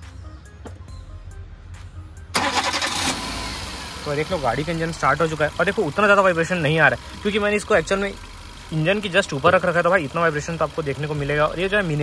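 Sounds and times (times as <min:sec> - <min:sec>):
car engine starting and idling: 0:01.0 - 0:12.0.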